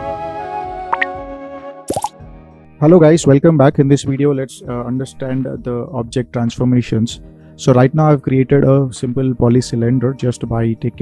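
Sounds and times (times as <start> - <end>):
upward-gliding plop effect: 0.9 - 1.2, 1.9 - 2.2.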